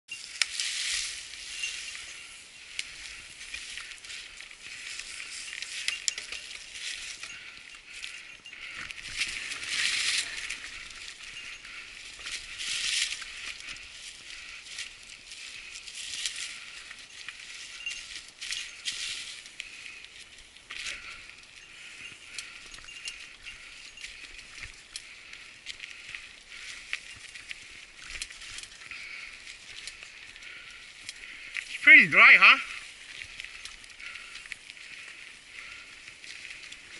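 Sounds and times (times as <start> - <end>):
bike tyres rustling through leaves: 0.1 - 36.9
fine clicks from bike: 2.0 - 31.7.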